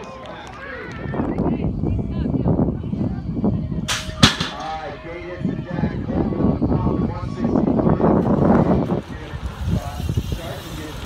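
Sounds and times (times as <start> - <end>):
gate slamming on ramp: 3.9 - 4.8.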